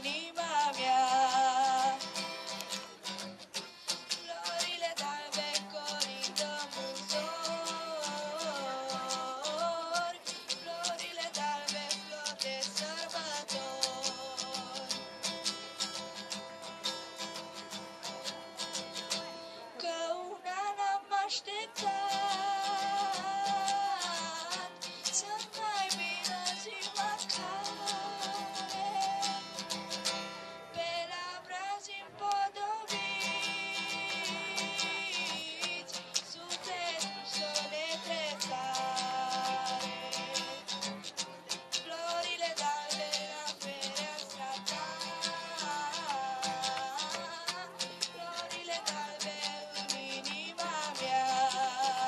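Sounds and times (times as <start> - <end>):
girl singing lead: 0.0 - 3.2, 3.8 - 18.8, 19.8 - 52.0
strummed acoustic guitar: 0.0 - 52.0.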